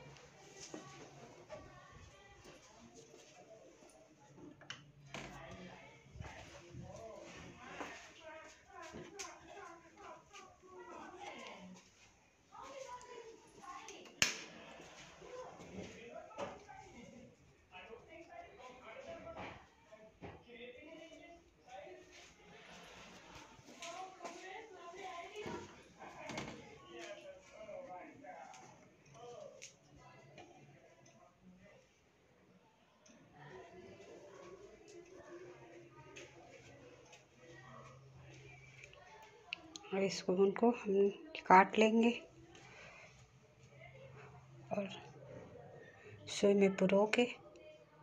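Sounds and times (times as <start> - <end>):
faint background speech: 0.0 - 48.0
faint voices talking: 0.0 - 48.0.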